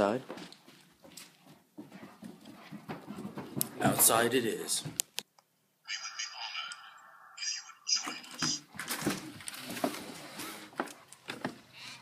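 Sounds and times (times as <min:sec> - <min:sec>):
dog footfalls and claw taps: 0:00.3 - 0:04.1.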